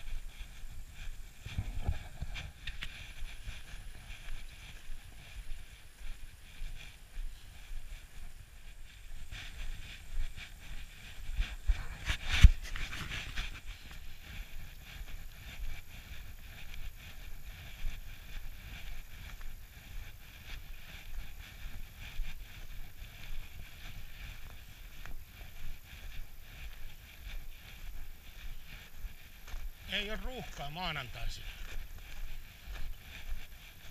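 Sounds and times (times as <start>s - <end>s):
wind rumble on microphone: 0.0s - 29.9s, 31.4s - 33.9s
footsteps crunching on snow: 0.0s - 33.9s.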